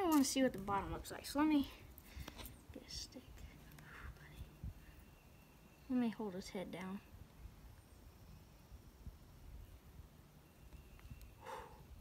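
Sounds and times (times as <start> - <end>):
faint whisper: 2.7 - 4.8.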